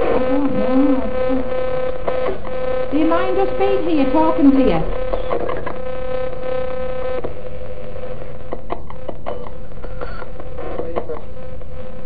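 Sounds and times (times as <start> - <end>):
humming radio sweep tone: 0.0 - 8.4.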